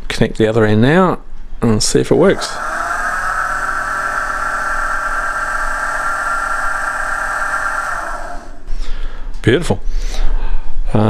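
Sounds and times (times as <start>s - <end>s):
blower motor whine with hum: 2.1s - 9.4s.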